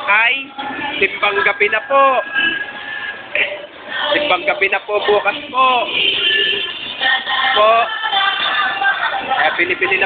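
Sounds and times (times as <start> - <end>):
music with singing voice: 0.0 - 10.0.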